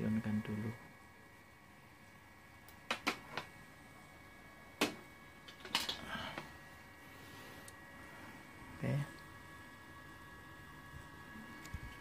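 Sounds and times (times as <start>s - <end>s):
faint high-pitched electrical hum: 0.0s - 12.0s.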